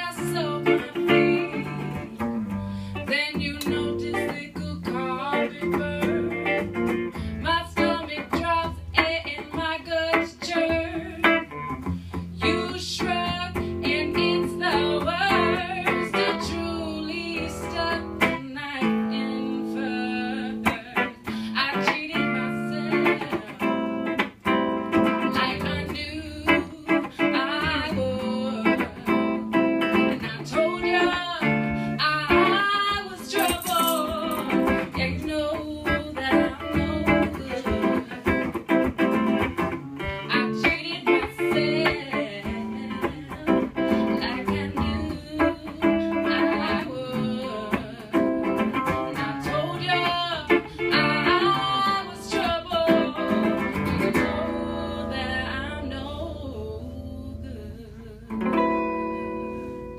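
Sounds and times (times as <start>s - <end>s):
electric guitar lead: 0.0s - 59.9s.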